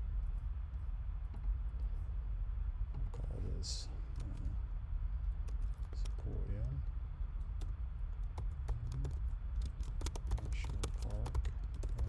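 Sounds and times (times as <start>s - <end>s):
steady low hum: 0.0s - 12.0s
computer keyboard key clicks: 8.3s - 12.0s.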